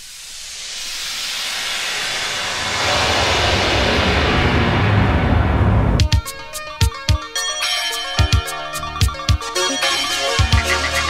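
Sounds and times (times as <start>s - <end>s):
hiss of noise: 0.0s - 6.5s
low bass beat: 5.8s - 7.3s.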